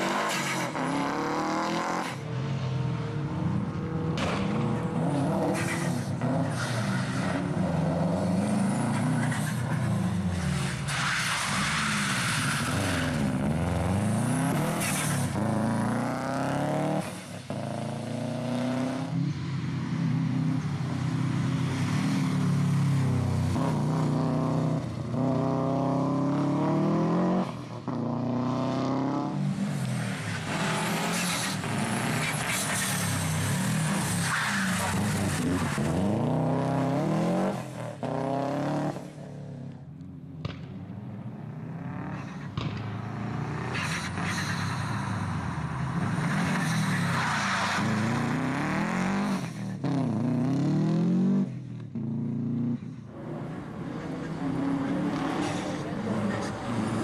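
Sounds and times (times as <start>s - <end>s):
rally car engines revving: 0.0s - 20.9s, 21.5s - 57.0s.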